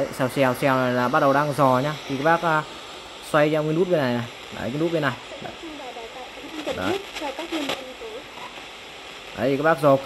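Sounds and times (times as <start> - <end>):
broken broadcast voices: 0.0 - 10.0
radio static hissing: 0.0 - 10.0.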